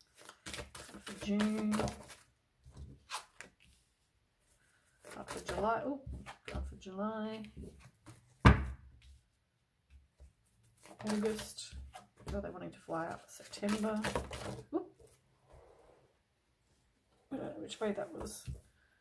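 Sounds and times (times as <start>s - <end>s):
woman speaking: 1.1s - 2.0s, 5.2s - 7.6s, 11.0s - 14.9s, 17.3s - 18.6s.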